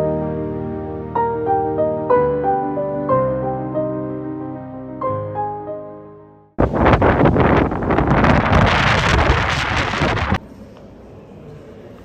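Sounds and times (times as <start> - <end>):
wind on microphone: 6.6 - 10.4.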